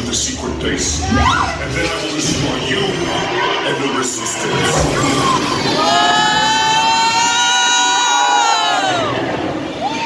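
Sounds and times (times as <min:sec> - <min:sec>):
people screaming: 0:00.9 - 0:01.8, 0:04.5 - 0:10.0.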